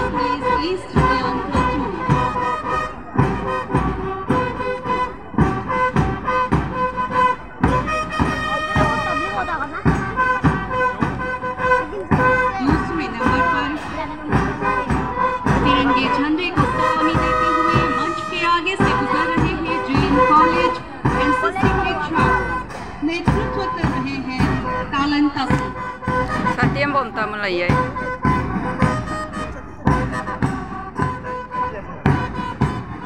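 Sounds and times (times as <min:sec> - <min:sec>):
steady drum beat: 0:00.0 - 0:33.0
wind instruments playing march: 0:00.0 - 0:33.0.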